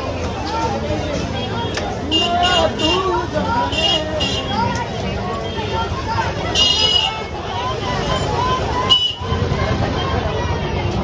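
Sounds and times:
many people talking: 0.0 - 11.0
vehicle horn honking: 2.1 - 3.1, 6.5 - 7.2, 8.9 - 9.3.

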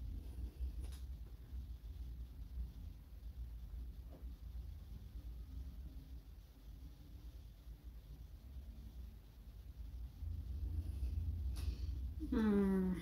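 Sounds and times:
faint low rumble: 0.0 - 13.0.

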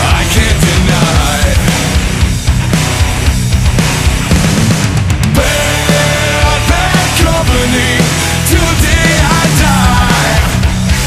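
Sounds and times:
heavy rock music: 0.0 - 11.0.

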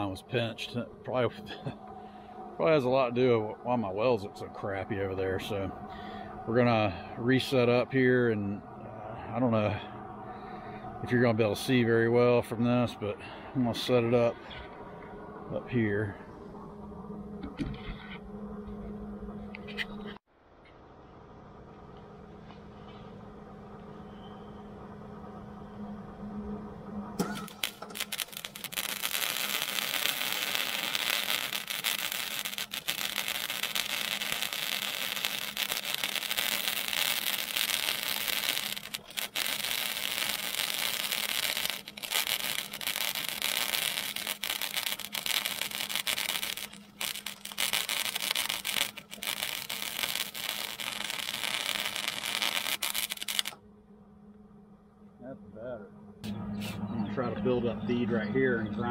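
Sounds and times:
welding arc crackling hiss: 0.0 - 0.2, 27.2 - 53.6
steady low hum: 0.0 - 58.9.

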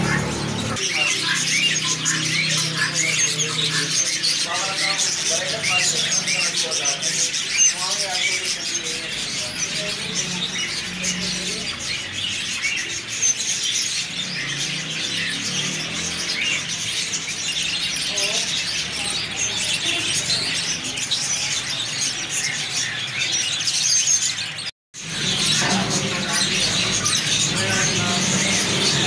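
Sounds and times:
caged birds chirping: 0.0 - 29.0.

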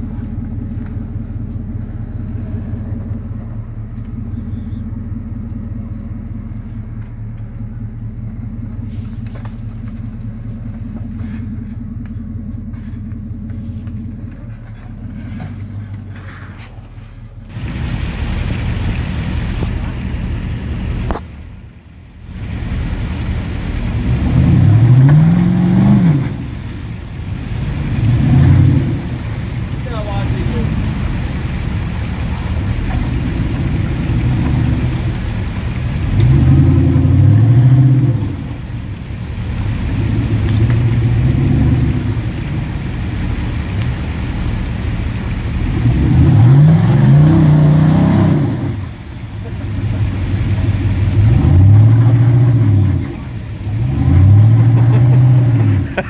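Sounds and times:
engine revving under load: 22.3 - 56.0.

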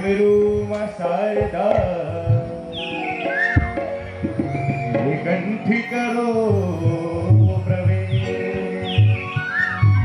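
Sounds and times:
hand drum beats: 1.4 - 2.6, 3.4 - 5.4.

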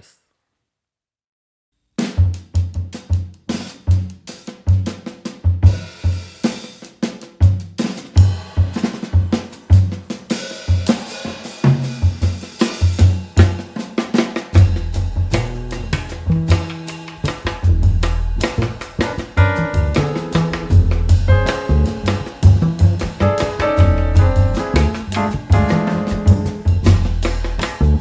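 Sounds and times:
jazz drum kit playing: 2.0 - 28.0
upright bass plucked notes: 17.6 - 28.0.

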